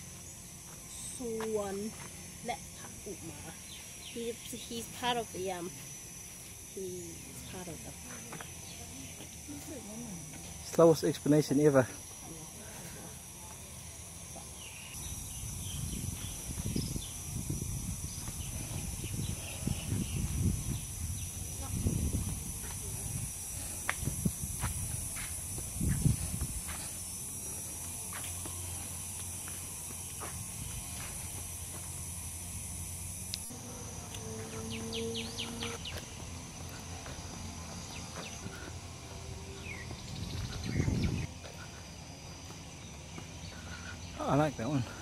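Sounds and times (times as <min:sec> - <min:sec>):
high insect drone: 0:00.0 - 0:45.0
wind rumble on microphone: 0:15.4 - 0:26.7, 0:40.0 - 0:41.3.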